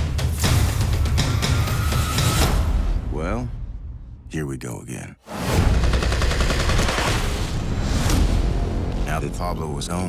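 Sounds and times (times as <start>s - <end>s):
rapid gunfire: 5.7s - 7.5s.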